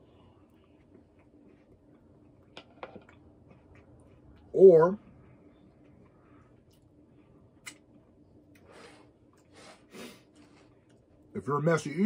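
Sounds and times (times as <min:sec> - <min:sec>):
person eating: 0:00.0 - 0:04.5, 0:05.8 - 0:11.3.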